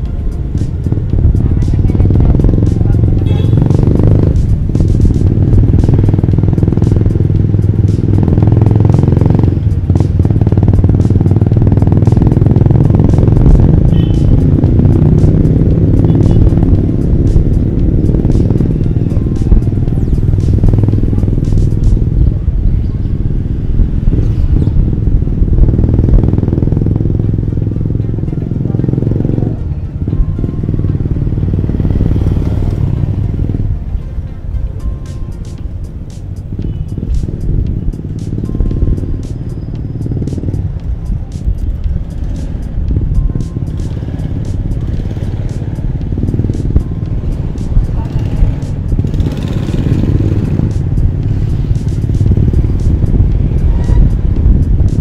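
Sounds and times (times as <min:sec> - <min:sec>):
motorcycles in street traffic: 0:00.0 - 0:55.0
music playing: 0:00.0 - 0:55.0.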